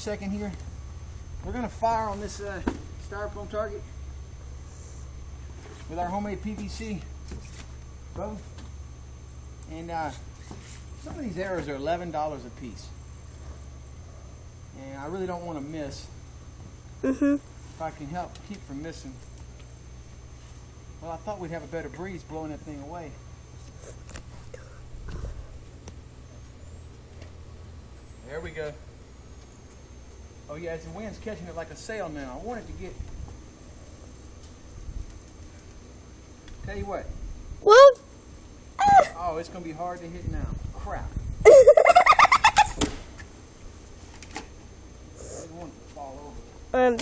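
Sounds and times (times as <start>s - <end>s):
low outdoor rumble: 0.0s - 47.0s
man talking: 1.4s - 3.9s
wind buffeting microphone: 40.2s - 41.5s.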